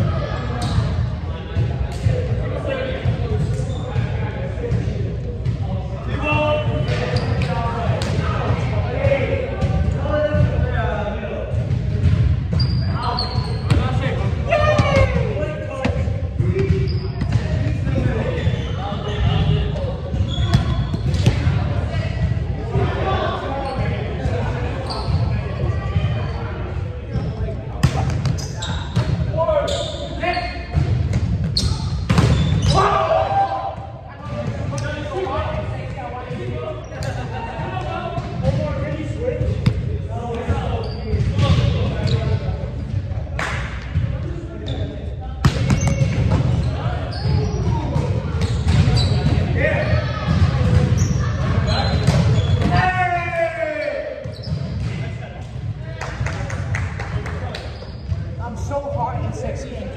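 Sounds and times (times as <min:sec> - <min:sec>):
volleyballs hit and bouncing: 0:00.5 - 0:23.2, 0:27.4 - 0:29.4, 0:30.7 - 0:44.4, 0:45.4 - 0:53.0, 0:54.2 - 0:59.2.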